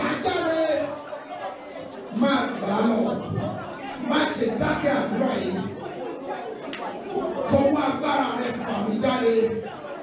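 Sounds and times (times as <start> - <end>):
man preaching into a microphone: 0.0 - 1.0, 2.1 - 5.8, 7.4 - 9.9.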